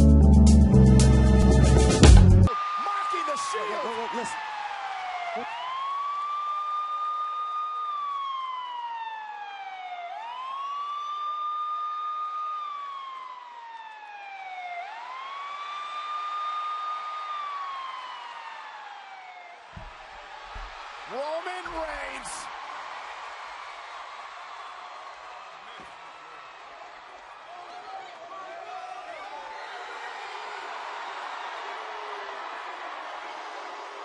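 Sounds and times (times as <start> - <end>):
police siren wailing: 2.4 - 22.5.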